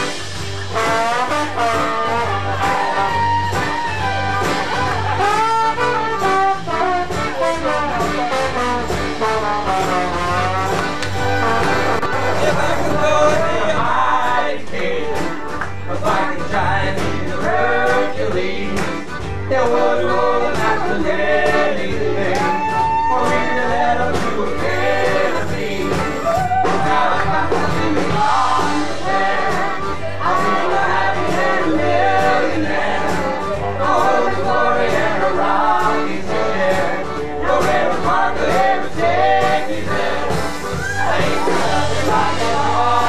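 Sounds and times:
trombone melody with glides: 0.0s - 14.4s
band playing: 0.0s - 43.0s
steady low bass line: 0.0s - 43.0s
men singing in chorus: 12.4s - 43.0s.

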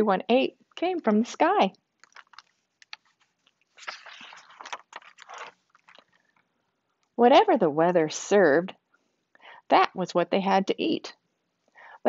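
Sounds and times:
paper page turning: 2.0s - 6.4s.

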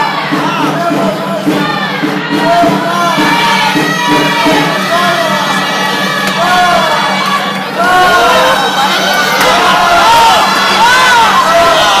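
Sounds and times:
crowd cheering and whooping: 1.7s - 12.0s.

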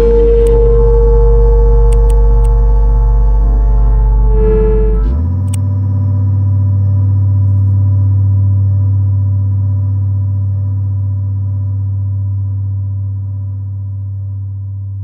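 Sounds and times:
low electronic drone: 0.0s - 15.0s.

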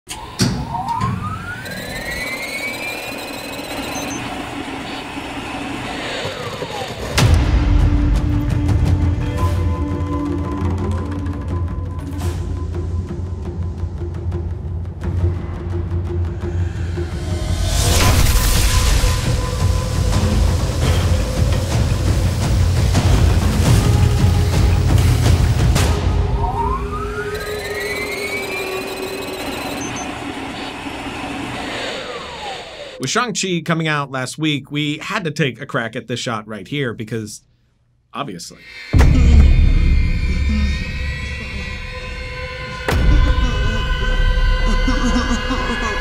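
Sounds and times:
electronic whine: 0.1s - 8.0s, 16.4s - 33.1s, 38.6s - 45.8s
heavy dark score music: 0.2s - 33.0s, 38.6s - 46.0s
sharp hit: 16.6s - 31.9s.

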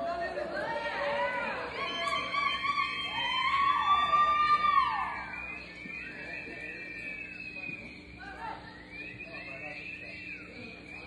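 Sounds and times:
people shouting: 0.4s - 5.4s
spectators whooping: 0.5s - 7.5s.

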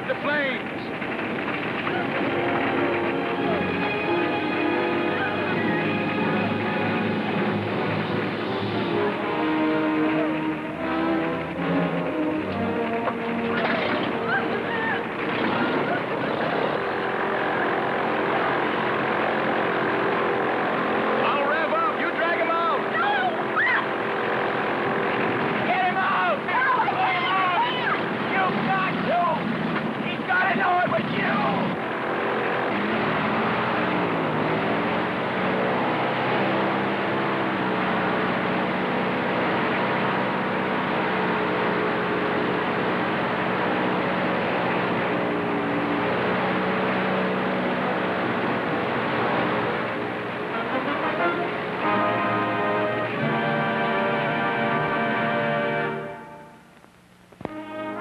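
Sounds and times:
airboat engine and propeller: 0.0s - 56.6s
man shouting: 21.4s - 23.9s, 25.7s - 29.4s.

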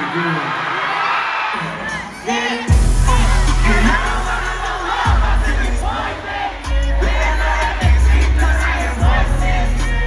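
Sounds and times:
crowd singing and shouting: 0.0s - 10.0s
hip-hop music over sound system: 1.6s - 10.0s
sliding deep bass notes: 2.7s - 6.0s.

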